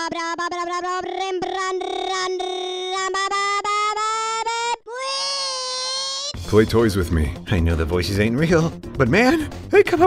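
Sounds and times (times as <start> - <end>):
high-pitched singing voice: 0.0 - 6.4.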